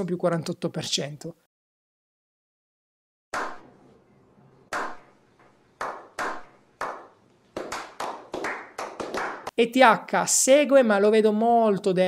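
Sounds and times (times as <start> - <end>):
men slow clapping: 5.8 - 9.5.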